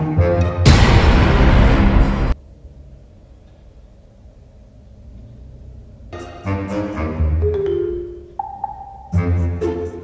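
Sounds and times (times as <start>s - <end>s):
loud rushing noise: 0.7s - 2.4s.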